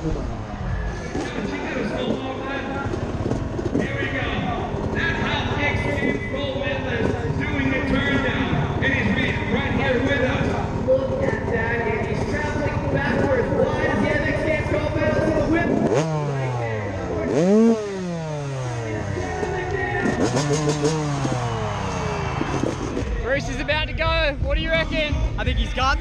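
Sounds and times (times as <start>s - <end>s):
motorbike engine idling and revving: 0.0s - 26.0s
voices: 0.0s - 26.0s.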